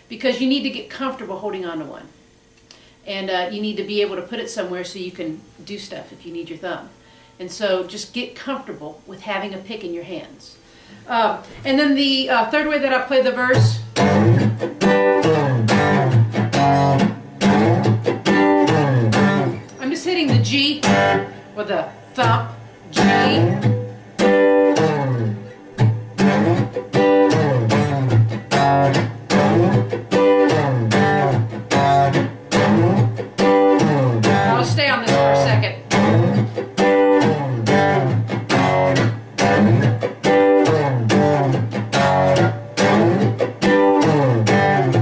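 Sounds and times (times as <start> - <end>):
acoustic guitar blues: 11.5 - 45.0.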